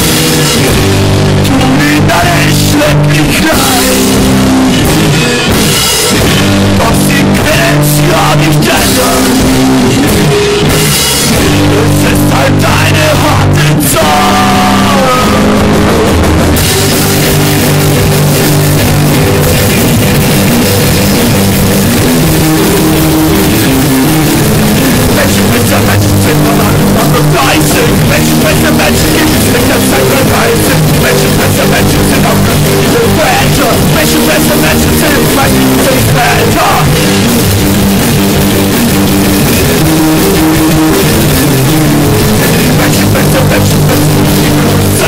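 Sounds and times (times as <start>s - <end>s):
drum kit: 0.0s - 45.0s
electric guitar chords: 0.0s - 45.0s
loud punk rock music: 0.0s - 45.0s.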